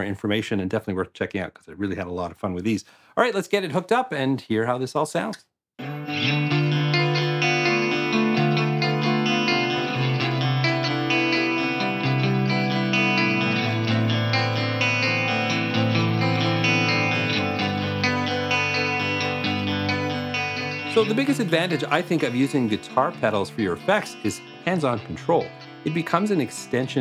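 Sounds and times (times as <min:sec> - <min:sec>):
electric guitar chords: 0:05.8 - 0:27.0.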